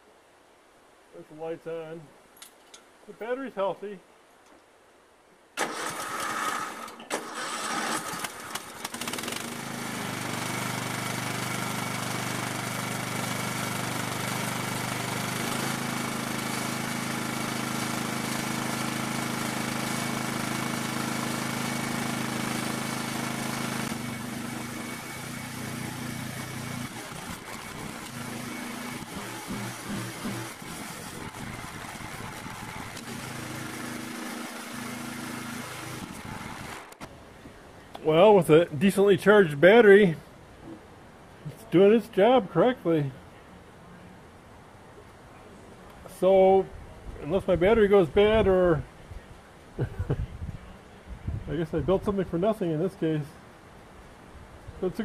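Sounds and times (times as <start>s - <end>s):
lawn tractor engine running: 5.6s - 37.1s.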